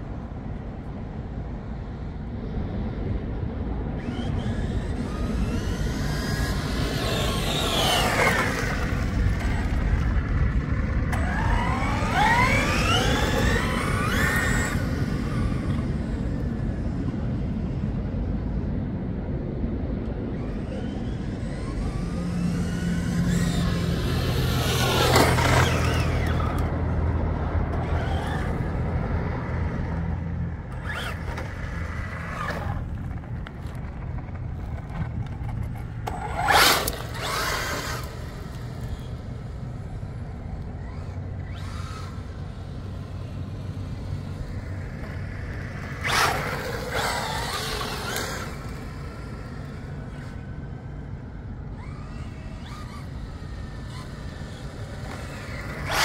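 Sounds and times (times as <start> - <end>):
electric motor whining: 4.0 - 10.2, 11.1 - 16.9, 20.4 - 33.8, 36.0 - 56.0.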